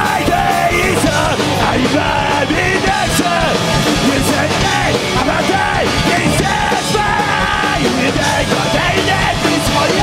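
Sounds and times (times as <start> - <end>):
bass guitar: 0.0 - 10.0
drums: 0.0 - 10.0
electric guitars: 0.0 - 10.0
man shouting and singing: 0.0 - 10.0.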